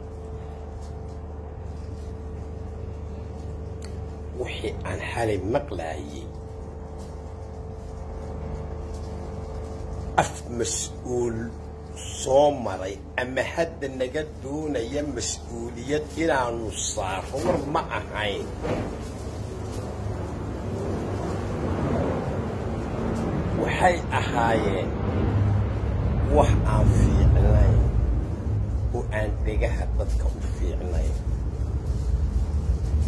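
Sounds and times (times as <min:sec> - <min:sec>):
faint even hum: 0:00.0 - 0:33.0
low background rumble: 0:00.0 - 0:33.0.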